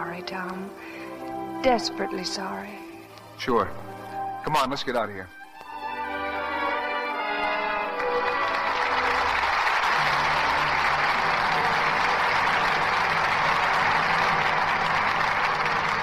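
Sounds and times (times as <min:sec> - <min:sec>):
orchestral music: 0:00.0 - 0:16.0
audience applauding: 0:05.7 - 0:16.0.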